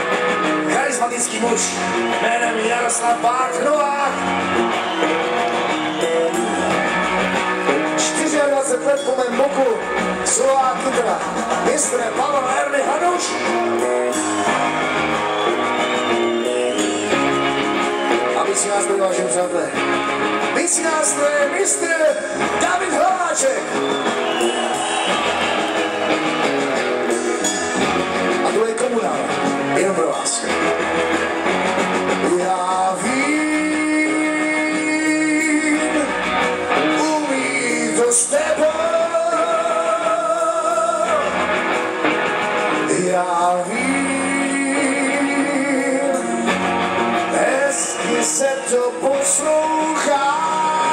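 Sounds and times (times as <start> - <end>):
drums: 0.0 - 50.9
guitar chords: 0.0 - 50.9
live rock band playing: 0.0 - 50.9.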